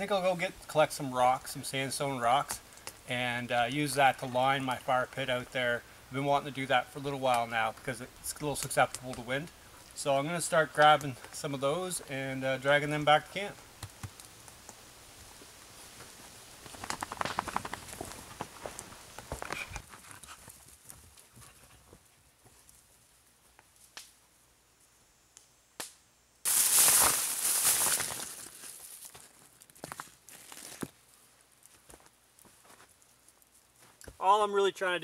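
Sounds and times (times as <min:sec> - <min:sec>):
footsteps: 0:15.2 - 0:22.9, 0:26.5 - 0:31.0, 0:31.7 - 0:34.2.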